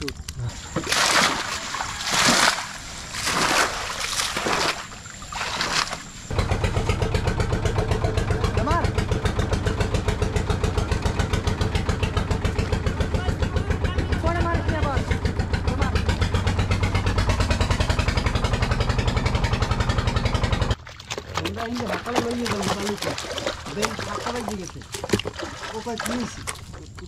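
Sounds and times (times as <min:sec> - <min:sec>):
boat engine running: 0:00.0 - 0:27.0.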